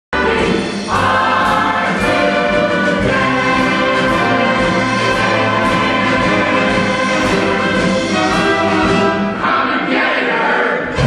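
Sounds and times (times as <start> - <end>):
orchestral music with brass: 0.2 - 11.0.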